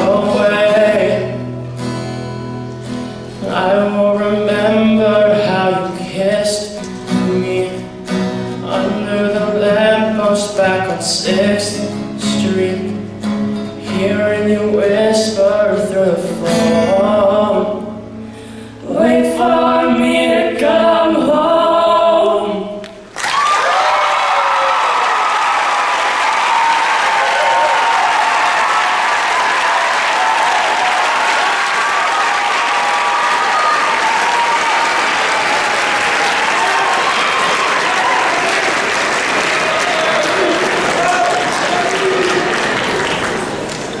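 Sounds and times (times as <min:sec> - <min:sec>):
audience applause: 0:23.1 - 0:44.0
crowd cheering and whooping: 0:23.1 - 0:44.0.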